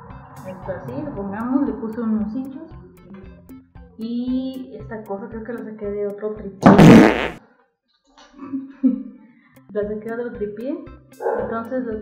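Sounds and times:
short rasping noise burst: 6.6s - 7.4s
woman laughing: 8.4s - 9.1s.

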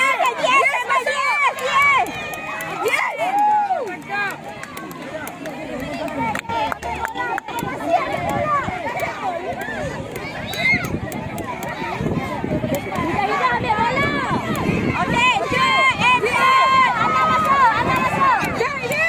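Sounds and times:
crowd shouting and cheering: 0.0s - 19.0s.

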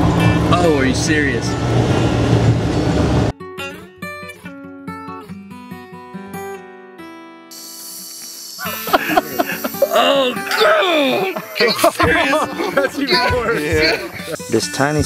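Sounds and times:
loud rushing noise: 0.0s - 3.3s
acoustic guitar picking single notes: 0.0s - 15.0s
people laughing: 8.6s - 14.5s.

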